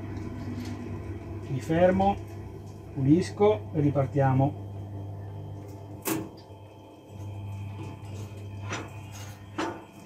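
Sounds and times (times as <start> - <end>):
auger motor hum: 0.0 - 10.0.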